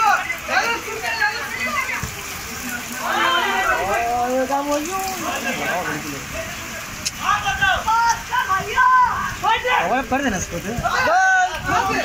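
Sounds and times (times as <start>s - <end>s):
players calling out: 0.0s - 10.1s
rain on concrete: 0.0s - 12.0s
water splashing underfoot: 0.0s - 12.0s.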